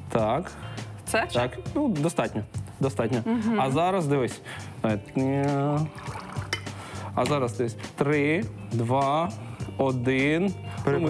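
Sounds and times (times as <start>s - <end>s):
water poured into a glass: 5.0s - 6.8s.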